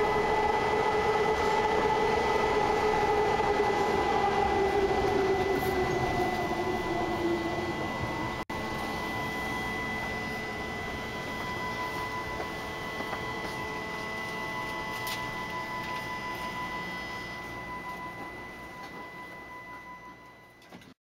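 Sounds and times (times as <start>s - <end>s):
whine sliding down in pitch: 0.0s - 20.3s
thin steady high tone: 0.0s - 20.6s
train rumbling in a tunnel: 0.0s - 20.9s.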